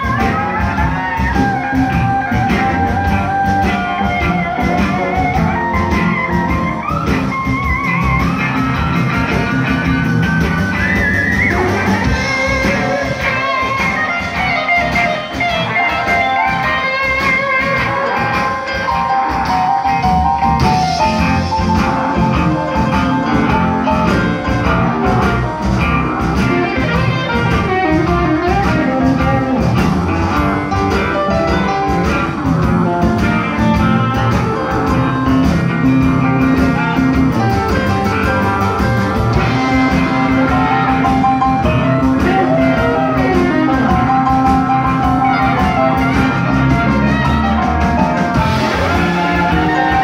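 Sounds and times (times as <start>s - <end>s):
bass: 0.0s - 50.0s
drum kit beat: 0.0s - 50.0s
electric guitar with bent notes: 0.0s - 50.0s
keyboard: 0.0s - 50.0s.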